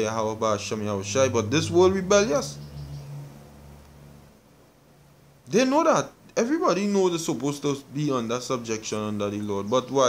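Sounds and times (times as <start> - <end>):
low steady hum with hiss: 0.0 - 10.0.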